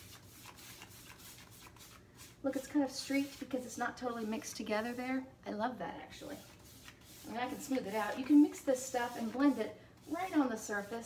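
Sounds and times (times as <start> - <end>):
paintbrush rubbing on wood: 0.0 - 5.2, 6.1 - 11.0.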